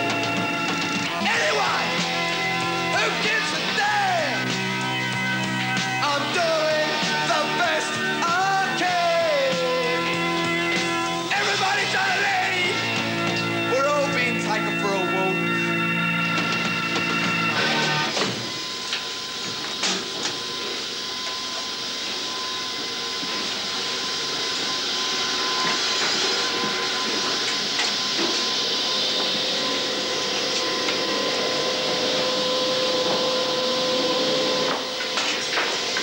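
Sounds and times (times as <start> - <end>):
factory machinery running: 0.0 - 36.0.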